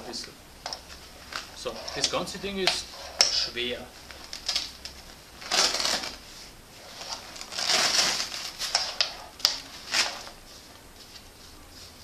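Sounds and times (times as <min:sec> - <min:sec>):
fabric scraping rasps: 0:01.5 - 0:03.8, 0:05.4 - 0:10.6.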